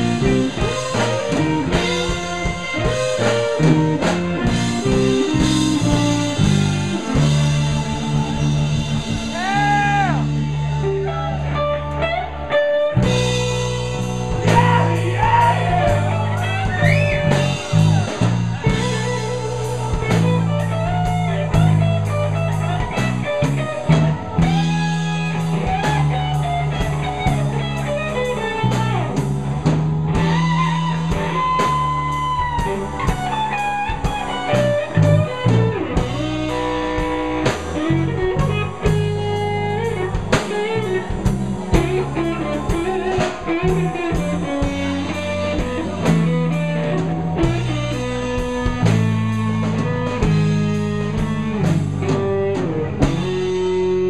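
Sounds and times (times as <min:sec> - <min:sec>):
drum kit: 0:00.0 - 0:54.0
electric bass: 0:00.0 - 0:54.0
lead electric guitar: 0:00.0 - 0:54.0
second electric guitar: 0:00.0 - 0:54.0.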